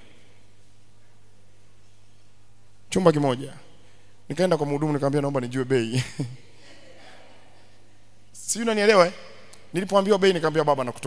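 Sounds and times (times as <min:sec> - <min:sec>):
electrical hum from sound system: 0:00.0 - 0:11.0
man speaking: 0:02.9 - 0:06.4, 0:08.3 - 0:11.0.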